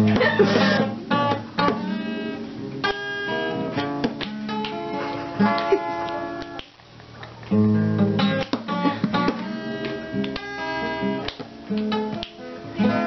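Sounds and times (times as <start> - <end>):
acoustic guitar: 0.0 - 13.0.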